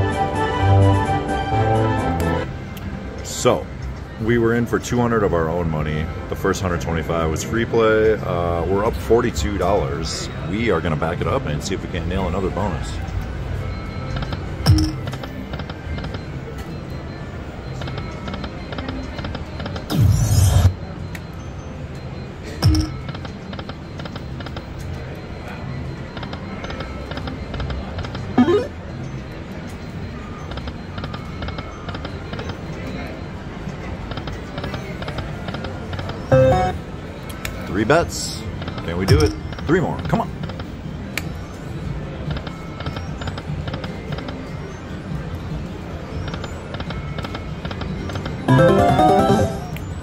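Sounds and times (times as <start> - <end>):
slot machine music: 0.0 - 2.5, 14.7 - 15.3, 22.6 - 23.0, 28.4 - 28.9, 36.3 - 36.9, 48.4 - 50.0
slot machine reel spinning: 28.4 - 28.8, 36.3 - 36.8, 48.5 - 49.8.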